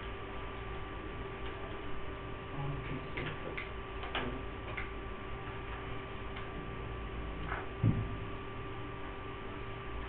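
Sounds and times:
electrical hum and hiss: 0.0 - 10.0.

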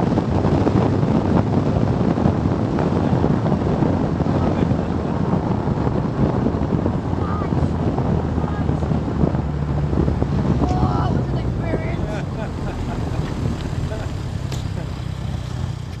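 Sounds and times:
race car engine at low revs: 0.0 - 16.0
wind noise on microphone: 0.0 - 16.0.

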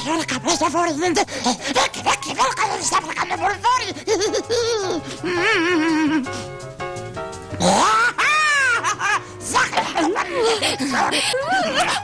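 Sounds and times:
cartoon gibberish voice: 0.0 - 5.6.

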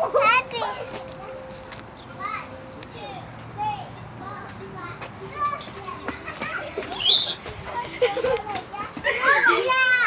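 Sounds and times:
children calling and shouting: 0.0 - 10.0.

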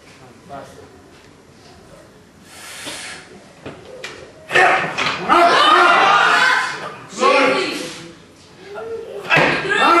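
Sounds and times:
voices shouting: 4.5 - 7.9, 8.8 - 10.0.

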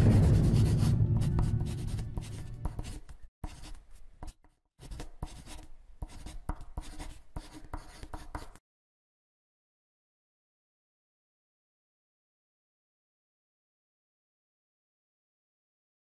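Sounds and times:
low sound: 0.0 - 3.2
marker pen writing: 0.6 - 8.6.

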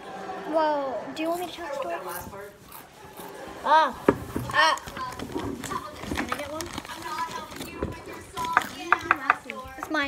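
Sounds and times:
girls talking indistinctly: 0.4 - 2.6, 3.3 - 10.0.

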